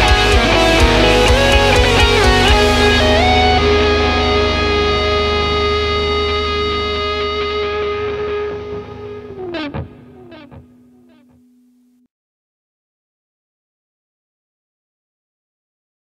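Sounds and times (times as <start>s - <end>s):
metal backing track with drums: 0.0s - 6.7s, 7.3s - 10.8s
distorted electric guitar solo: 0.0s - 12.0s.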